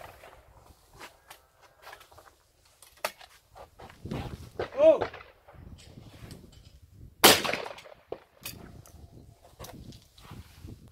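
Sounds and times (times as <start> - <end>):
person shouting: 4.7 - 5.1.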